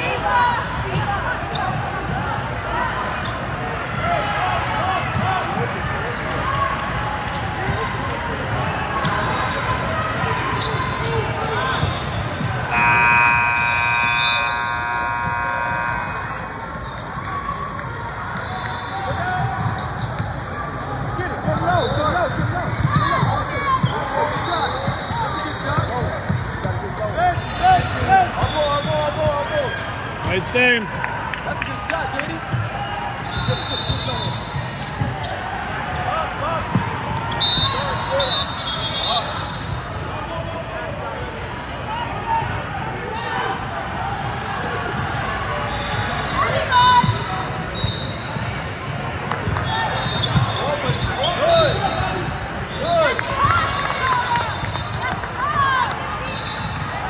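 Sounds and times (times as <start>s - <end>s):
chatter of spectators and players: 0.0s - 57.0s
buzzer horn: 12.7s - 16.5s.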